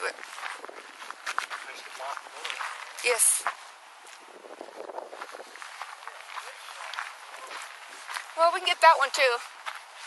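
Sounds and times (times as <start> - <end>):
footsteps on dirt: 0.0 - 10.0.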